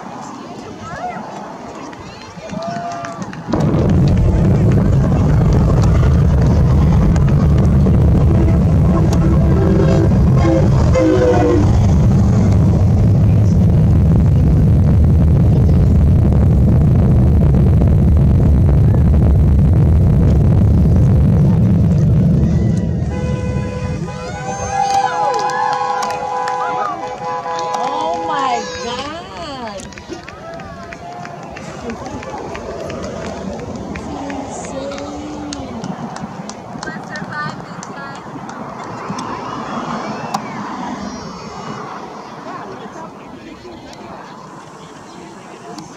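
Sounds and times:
steady rushing outdoor noise: 0.0 - 45.9
distant rocket engines rumbling: 3.1 - 45.9
faint distant voices: 23.8 - 45.9.

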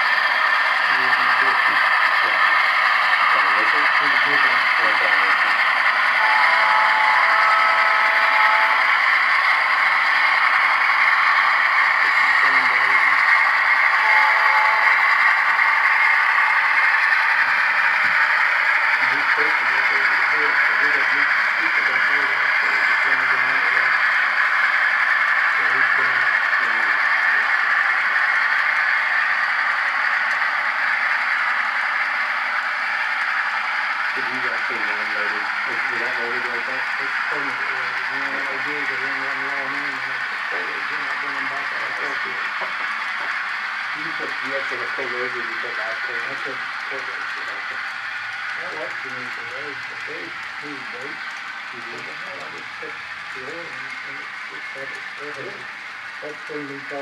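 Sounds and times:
faint voices talking: 3.2 - 5.6, 19.0 - 24.0, 25.6 - 27.5, 34.2 - 42.8, 44.0 - 47.8, 48.6 - 51.2, 51.8 - 55.6, 56.2 - 57.0.

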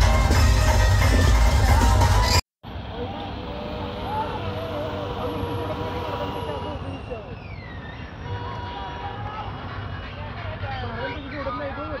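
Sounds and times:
background music: 0.0 - 2.4
vehicle engines and road noise: 0.0 - 12.0
people's voices and shouts: 1.6 - 7.6.

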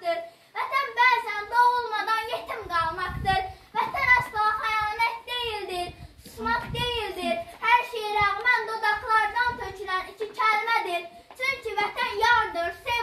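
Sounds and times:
girl reciting a poem: 0.0 - 13.0.

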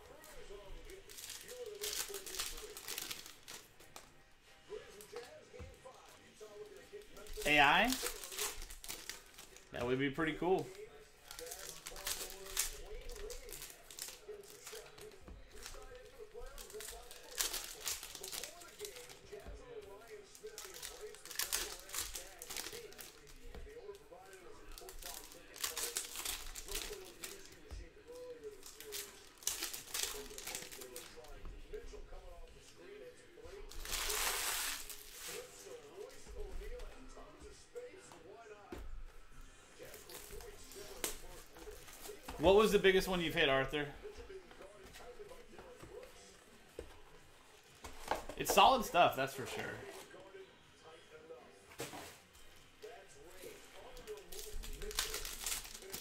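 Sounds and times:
foil wrappers crinkling: 0.0 - 4.1, 4.7 - 37.2, 39.8 - 47.0, 52.8 - 56.0
foil packs tearing: 0.9 - 3.6, 7.2 - 9.6, 11.3 - 19.2, 20.3 - 23.3, 24.7 - 27.6, 28.6 - 31.3, 33.7 - 35.6, 53.9 - 56.0.

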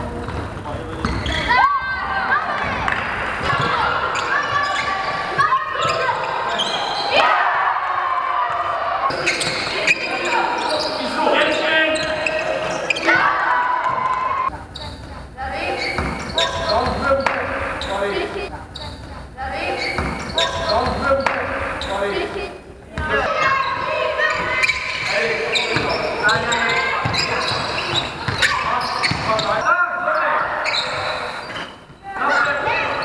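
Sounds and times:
basketball bouncing on court: 0.1 - 1.4, 2.5 - 6.3, 25.6 - 29.6
players calling out: 0.1 - 33.0.

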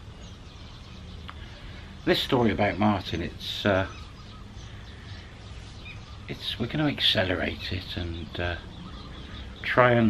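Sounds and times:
faint distant bird calls: 0.0 - 10.0.

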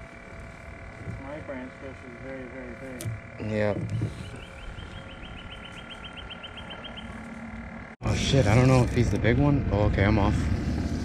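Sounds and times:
animal chirping rapidly: 4.1 - 7.2.

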